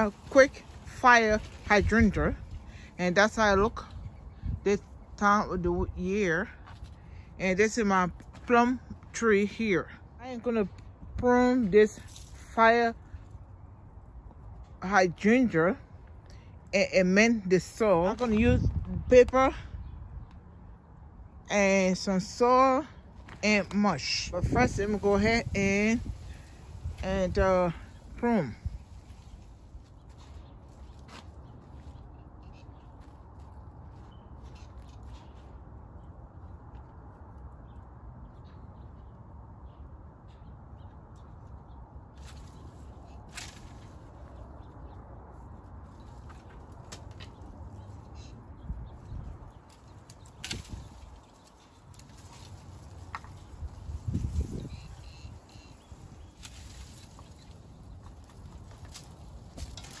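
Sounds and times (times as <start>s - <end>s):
pruning shears snipping stems: 49.7s - 53.4s.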